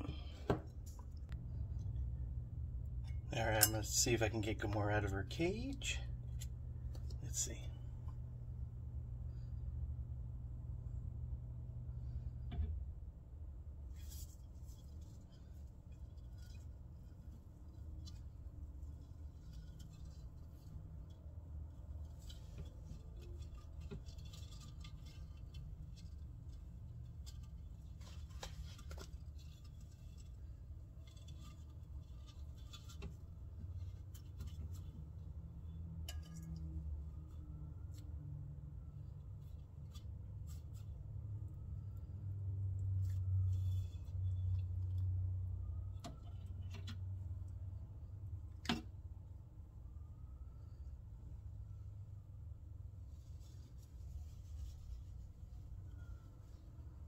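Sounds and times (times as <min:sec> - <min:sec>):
low steady hum: 0:00.0 - 0:57.0
claws scratching wood and glass: 0:13.9 - 0:35.2.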